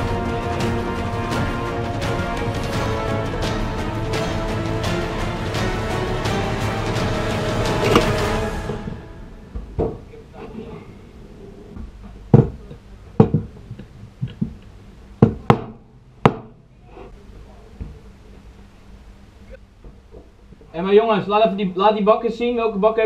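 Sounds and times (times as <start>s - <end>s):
background music: 0.0s - 9.9s
hammer striking wooden block: 7.8s - 8.2s.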